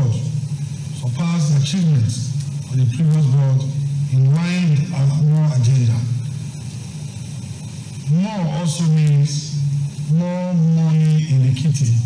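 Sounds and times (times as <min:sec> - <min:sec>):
room noise and hiss: 0:00.0 - 0:12.0.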